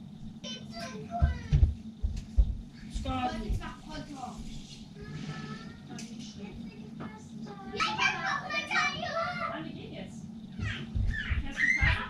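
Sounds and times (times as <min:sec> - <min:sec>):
children talking and calling out: 0:00.4 - 0:01.8, 0:04.8 - 0:12.0
low rumbling thumps: 0:01.1 - 0:04.1, 0:10.2 - 0:12.0.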